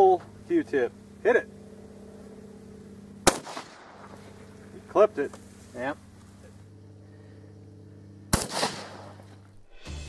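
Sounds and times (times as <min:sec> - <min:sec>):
shotgun shot: 0:03.2 - 0:04.2, 0:08.3 - 0:09.3.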